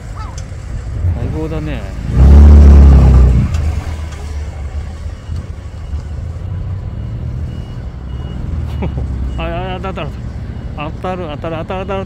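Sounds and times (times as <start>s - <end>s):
car engine revving: 0.0s - 4.6s.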